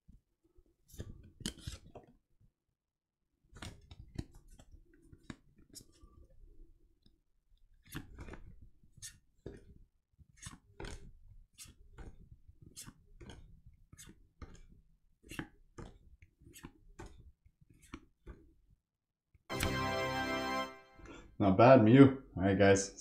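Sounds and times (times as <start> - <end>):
trading cards flipped by hand: 0.9 - 2.0, 3.5 - 6.0, 7.8 - 18.5.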